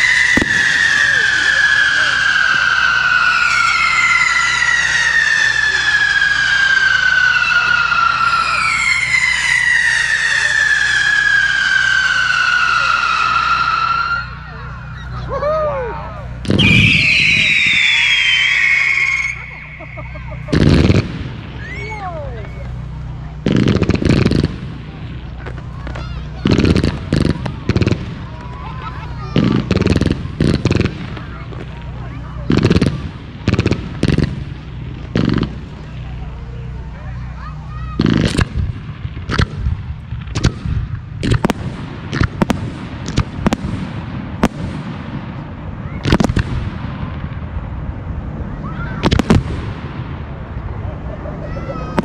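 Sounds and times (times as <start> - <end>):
fireworks cracking: 0.0 - 52.0.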